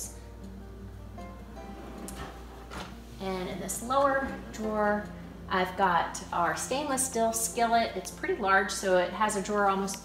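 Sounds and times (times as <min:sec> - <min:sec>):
acoustic guitar music: 0:00.0 - 0:08.1.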